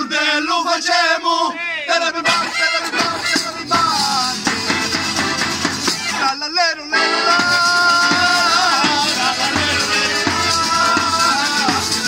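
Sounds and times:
men singing in parts: 0.0 - 12.0
accordion: 1.9 - 12.0
acoustic guitar: 2.0 - 12.0
hand percussion beat: 2.3 - 6.2, 7.3 - 12.0.

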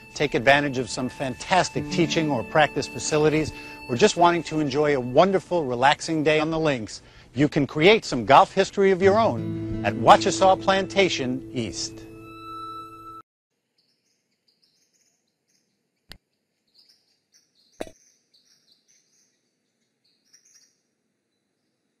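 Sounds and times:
birdsong chirping: 0.0 - 5.3
held music chord: 0.0 - 5.8, 9.0 - 13.2.

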